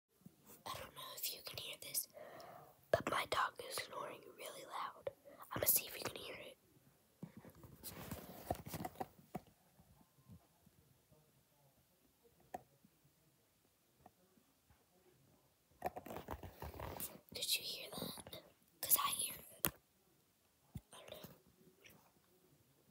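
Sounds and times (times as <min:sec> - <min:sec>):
girl whispering: 0:00.6 - 0:02.2, 0:03.0 - 0:06.6, 0:17.3 - 0:19.7, 0:20.8 - 0:21.4.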